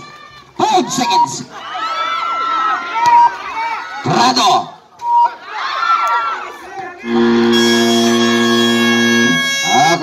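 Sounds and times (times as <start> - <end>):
crowd shouting and cheering: 0.0 - 10.0
loud steady buzzer: 7.0 - 10.0.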